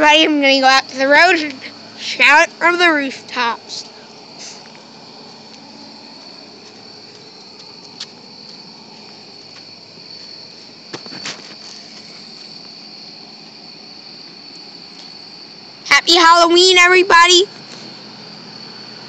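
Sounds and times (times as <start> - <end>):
crickets chirping: 0.0 - 19.0.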